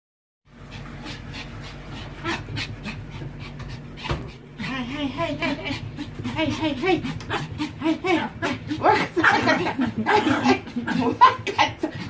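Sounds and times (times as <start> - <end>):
small dog panting: 0.5 - 12.0.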